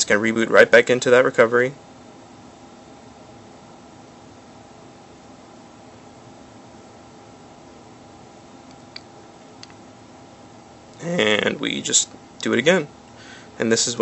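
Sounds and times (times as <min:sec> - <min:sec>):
faint hum: 0:00.0 - 0:14.0.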